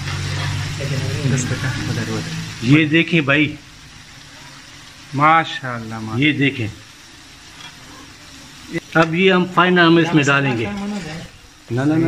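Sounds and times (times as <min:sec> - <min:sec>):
gravy frying and bubbling: 0:00.0 - 0:12.0.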